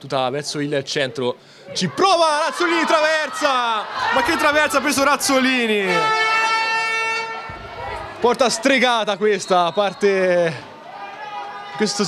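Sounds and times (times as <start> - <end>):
horn blowing long note: 5.8 - 7.9.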